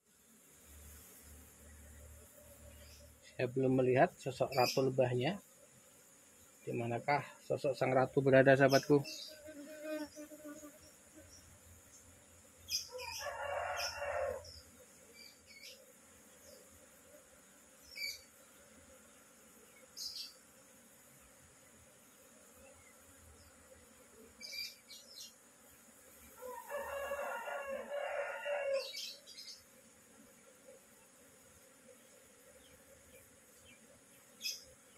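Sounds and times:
honeybee colony humming: 0.0s - 34.9s
rooster crowing: 12.8s - 14.6s, 26.4s - 29.2s.

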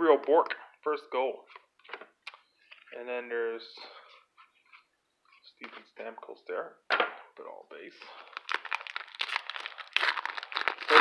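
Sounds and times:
wrapper crinkling: 8.1s - 11.0s.

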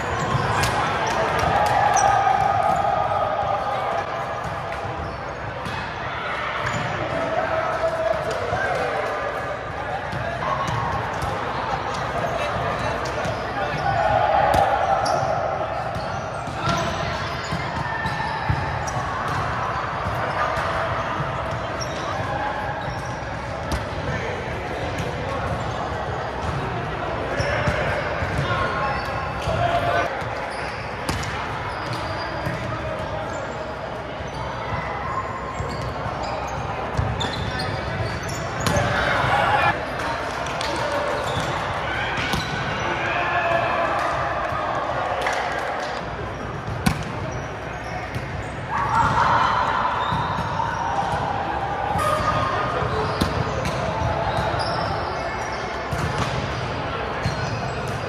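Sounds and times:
players calling and chatting: 0.0s - 58.0s
volleyballs hit and bouncing: 0.0s - 58.0s.

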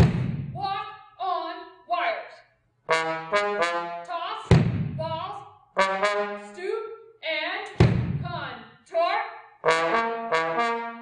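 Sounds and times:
trombone playing: 2.9s - 4.1s, 5.8s - 6.6s, 9.6s - 11.0s.

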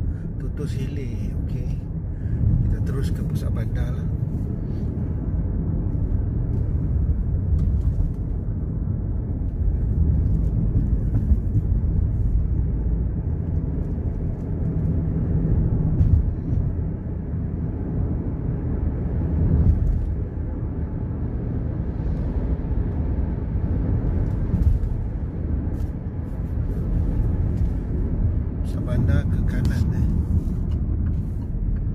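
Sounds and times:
car cabin engine and tyre rumble: 0.0s - 31.9s.

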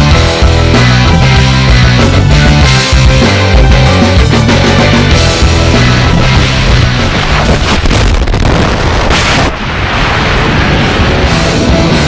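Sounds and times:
rushing air: 5.9s - 12.0s.

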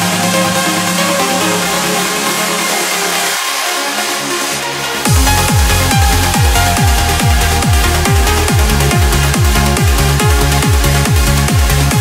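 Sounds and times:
trance synth chords and pads: 0.0s - 12.0s.

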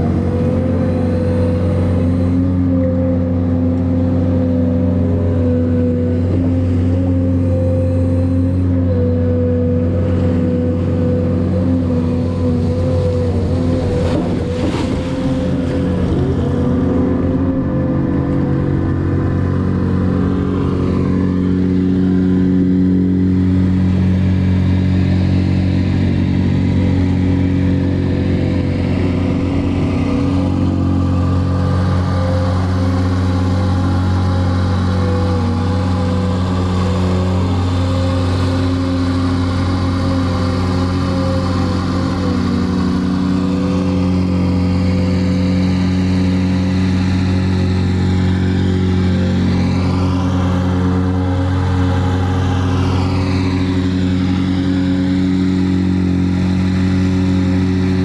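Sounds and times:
excavator diesel engine running: 0.0s - 58.0s.

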